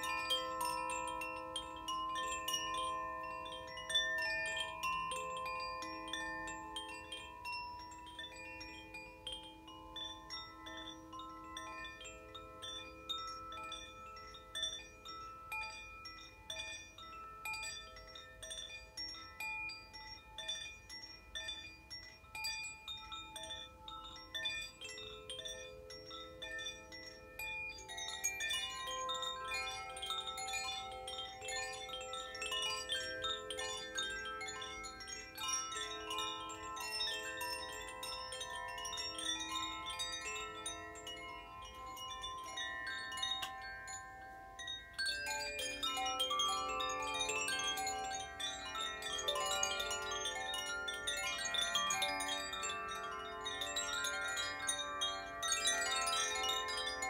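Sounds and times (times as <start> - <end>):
wind chimes ringing: 0.0 - 57.0.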